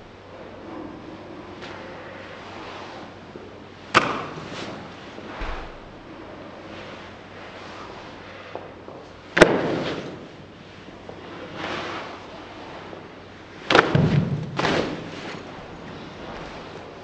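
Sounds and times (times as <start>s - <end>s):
clothing rustle: 14.0s - 17.0s.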